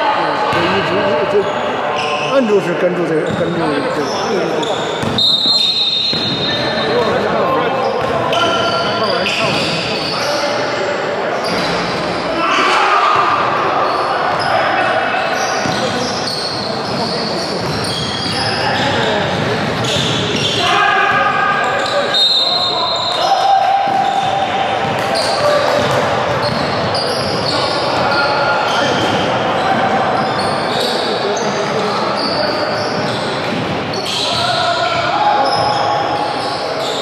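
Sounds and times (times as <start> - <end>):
players' voices echoing: 0.0 - 37.0.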